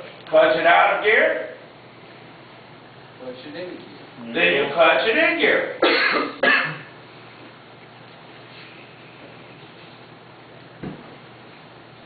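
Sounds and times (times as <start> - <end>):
person coughing: 5.8 - 6.9.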